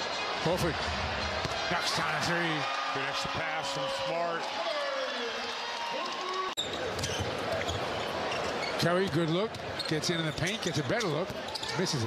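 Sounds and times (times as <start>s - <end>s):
crowd noise and voices: 0.0s - 12.0s.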